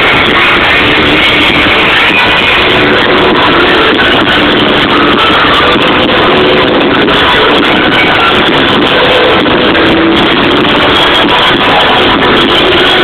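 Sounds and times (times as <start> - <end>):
live rock band with electric guitar: 0.0 - 13.0.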